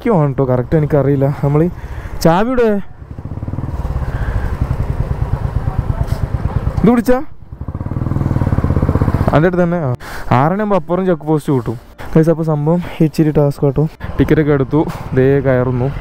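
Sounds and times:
motorcycle engine running: 2.6 - 9.8
man's voice: 9.3 - 16.0.

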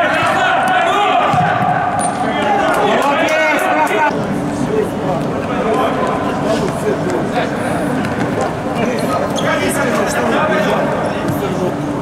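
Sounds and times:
players calling and shouting: 0.0 - 12.0
ball kicked and bounced on court: 0.1 - 2.2.

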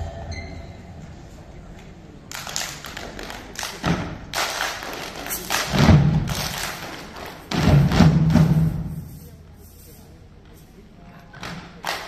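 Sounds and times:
heavy thumps of dancing: 5.5 - 6.7, 7.5 - 8.9.

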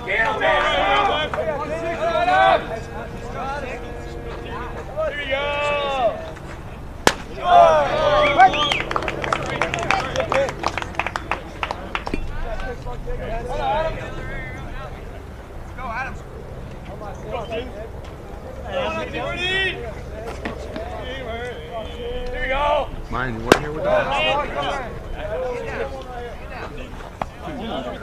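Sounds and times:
people shouting: 0.0 - 14.6
ball popping into catcher's mitt: 7.0 - 7.4, 23.5 - 23.7
quick claps: 8.4 - 12.8, 23.5 - 23.8.

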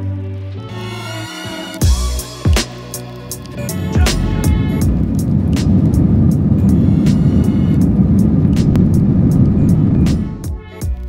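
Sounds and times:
background music with steady beat: 0.0 - 11.0
jet engine and runway noise: 4.8 - 10.5.

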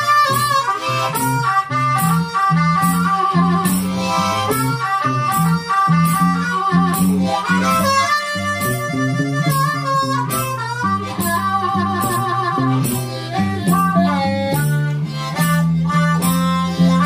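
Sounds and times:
acoustic guitar strumming: 0.0 - 17.0
harmonica playing blues melody: 0.0 - 17.0.

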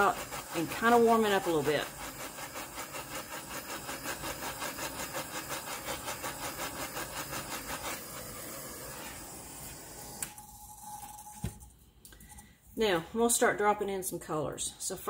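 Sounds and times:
torch flame hissing: 0.0 - 11.4.

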